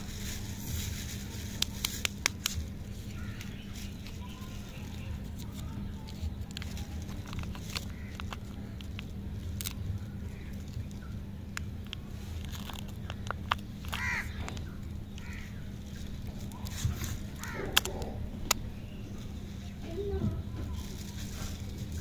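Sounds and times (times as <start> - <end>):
paper wrapper crinkling: 0.0 - 19.8, 20.7 - 22.0.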